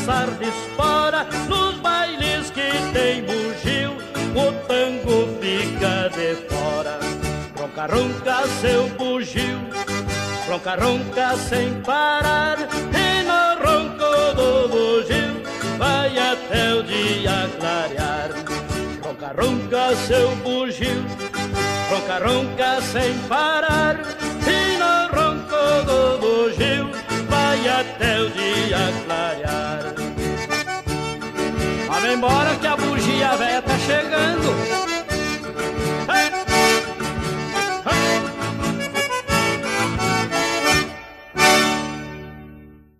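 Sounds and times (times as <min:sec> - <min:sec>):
accordion melody: 0:00.0 - 0:42.9.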